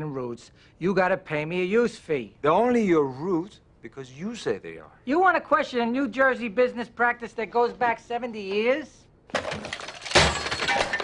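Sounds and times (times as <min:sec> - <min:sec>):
debris clinking: 0:09.3 - 0:11.0
glass breaking: 0:09.3 - 0:11.0
objects clattering: 0:09.3 - 0:11.0.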